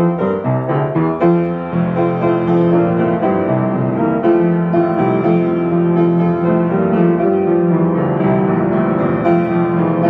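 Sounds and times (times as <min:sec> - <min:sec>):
grand piano playing hymn chords: 0:00.0 - 0:10.0.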